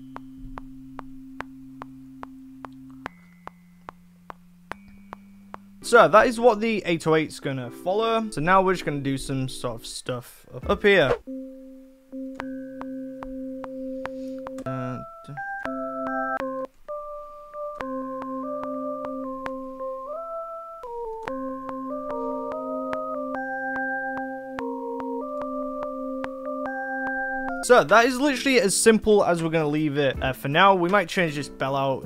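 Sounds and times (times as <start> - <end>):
bell-sound melody: 3.1 - 6.1
held synth chords: 11.2 - 27.7.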